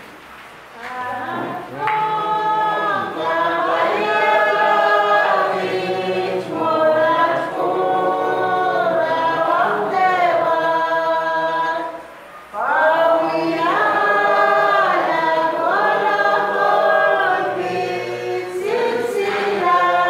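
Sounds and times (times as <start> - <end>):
congregation singing a hymn: 0.8 - 20.0.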